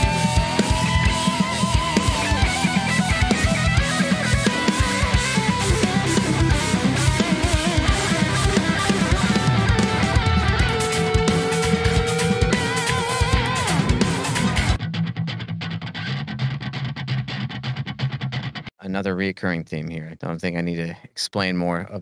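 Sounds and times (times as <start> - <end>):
busy drum kit: 0.0 - 14.8
distorted electric lead guitar: 0.0 - 18.7
heavy rhythm guitars: 0.0 - 20.9.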